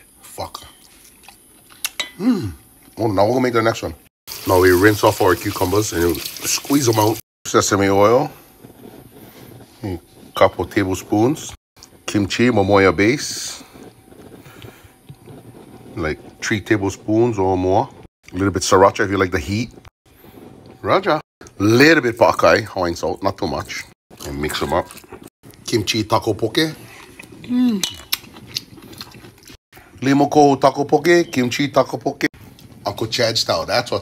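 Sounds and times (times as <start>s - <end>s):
sauce pouring onto cucumbers: 4.3s - 7.2s
person chewing: 26.9s - 29.6s.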